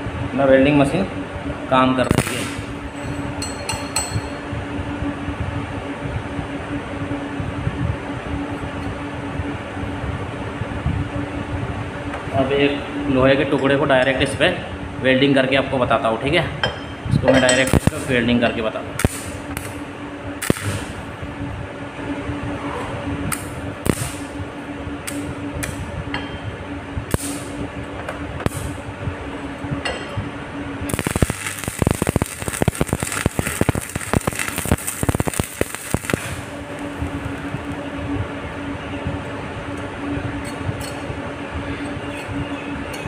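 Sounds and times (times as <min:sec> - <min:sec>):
steady hum: 0:00.0 - 0:43.0
arc welding crackle: 0:01.8 - 0:03.4, 0:17.6 - 0:21.3, 0:23.3 - 0:25.9, 0:27.0 - 0:28.9, 0:30.6 - 0:41.1.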